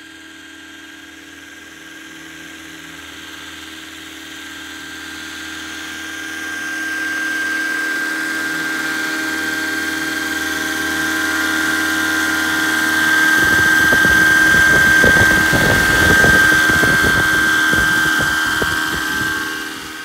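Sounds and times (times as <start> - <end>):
model helicopter rotors whining: 1.3 - 20.0
rotor wash rumble on microphone: 13.1 - 20.0.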